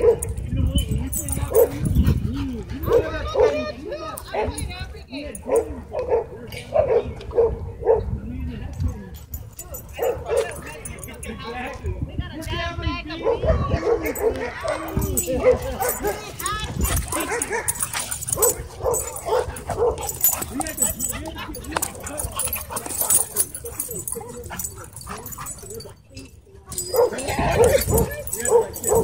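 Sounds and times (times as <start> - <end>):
dogs barking: 0.0 - 0.4, 1.2 - 2.2, 5.4 - 8.2, 9.6 - 11.2, 13.2 - 26.0, 26.7 - 29.0
dogs yipping: 1.1 - 3.6, 9.6 - 10.9, 13.3 - 29.0
dogs whining: 14.1 - 29.0.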